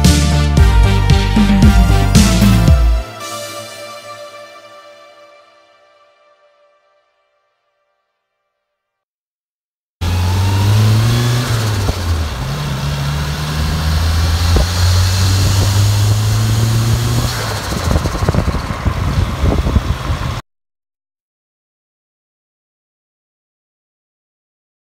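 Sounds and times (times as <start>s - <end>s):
car engine running: 10.0s - 20.4s
road and wind noise: 10.0s - 20.4s.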